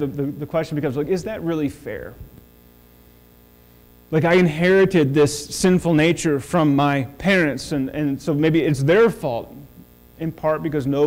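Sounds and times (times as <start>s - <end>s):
man speaking: 0.0s - 2.3s, 4.1s - 11.0s
low electrical mains hum: 0.0s - 11.0s.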